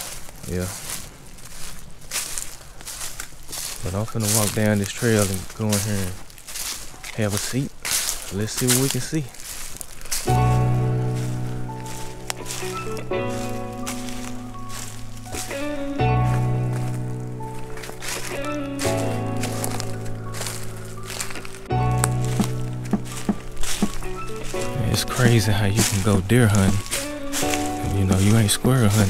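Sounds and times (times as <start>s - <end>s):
sustained music chords: 10.3s - 29.0s.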